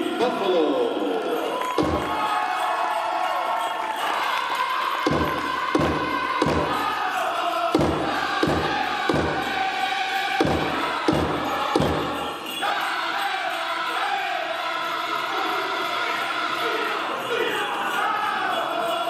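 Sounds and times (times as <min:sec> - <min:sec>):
group chanting: 0:00.0 - 0:19.0
heavy drum beats: 0:01.8 - 0:02.3, 0:05.1 - 0:07.0, 0:07.7 - 0:09.8, 0:10.4 - 0:12.3.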